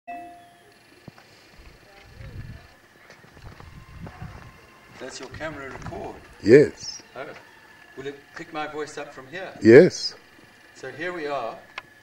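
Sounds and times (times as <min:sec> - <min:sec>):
faint voices: 0:00.7 - 0:11.0.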